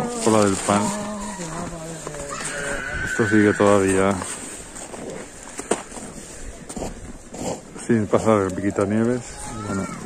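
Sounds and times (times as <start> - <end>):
footsteps crunching in snow: 0.0 - 10.0
low outdoor background: 0.0 - 10.0.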